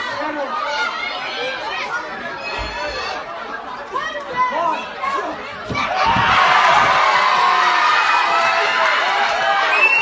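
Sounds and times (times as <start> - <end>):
crowd chatter and calling out: 0.0 - 10.0.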